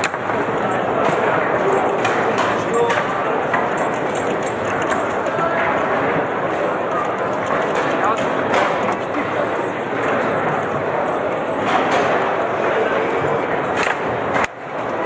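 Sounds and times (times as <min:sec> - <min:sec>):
table football clacks and knocks: 0:00.0 - 0:06.3, 0:07.1 - 0:10.8
hubbub of many voices: 0:00.0 - 0:15.0.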